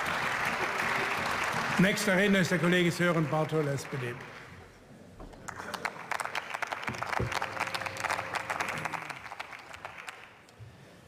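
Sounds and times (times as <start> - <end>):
many hands clapping: 0.0 - 4.5, 5.3 - 10.6.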